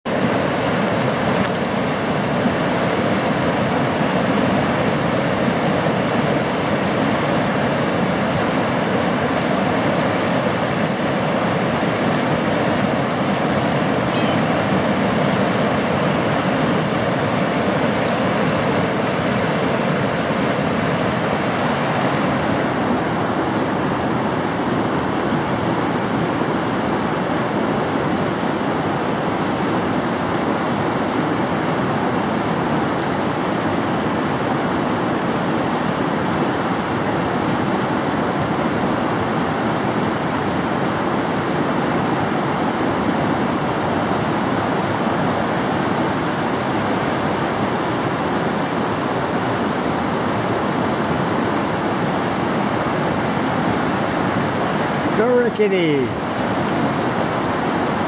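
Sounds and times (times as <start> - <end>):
river rushing over rocks: 0.1 - 58.0.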